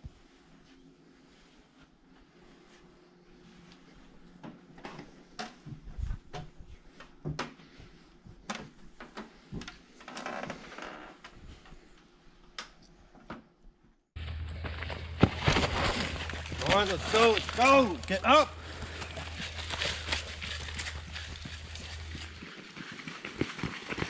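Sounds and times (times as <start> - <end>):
people moving and handling things: 0.0 - 13.5, 14.2 - 22.4.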